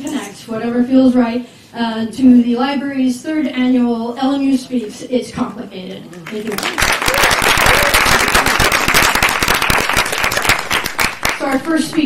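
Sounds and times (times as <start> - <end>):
audience applauding: 6.3 - 12.0.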